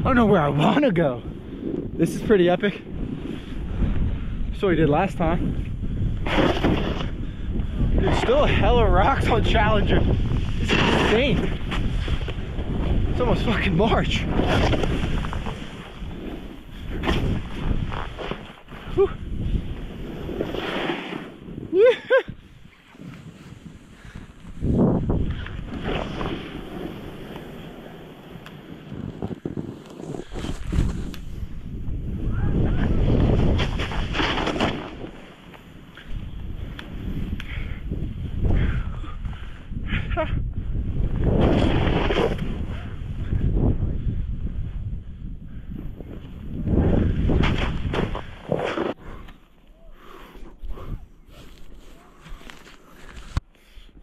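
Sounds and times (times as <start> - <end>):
wind rushing over microphone: 0.0 - 49.3, 50.2 - 54.0
snowboard sliding through snow: 0.1 - 45.0, 45.8 - 49.2.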